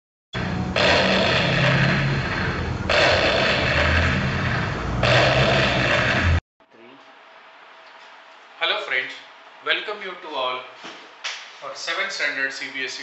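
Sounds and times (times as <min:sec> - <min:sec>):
loud noisy roar: 0:00.4 - 0:06.4.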